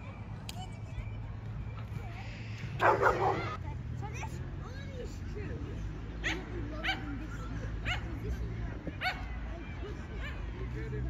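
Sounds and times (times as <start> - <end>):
voices: 0.0 - 11.0
dog yipping: 2.8 - 3.6.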